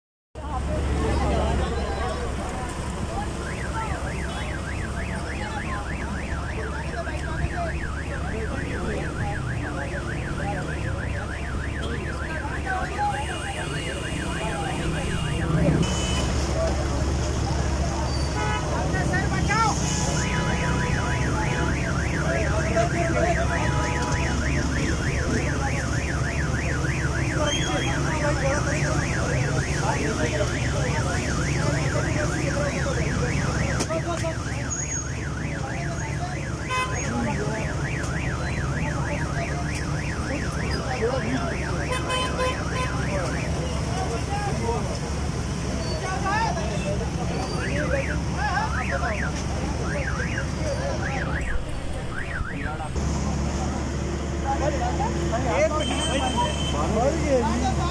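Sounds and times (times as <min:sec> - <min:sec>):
crowd chatter: 0:00.4 - 0:57.9
siren yelping: 0:03.1 - 0:15.8, 0:19.1 - 0:44.8, 0:45.8 - 0:53.0
car alarm warbling: 0:03.1 - 0:16.2, 0:19.4 - 0:44.8, 0:45.8 - 0:53.0.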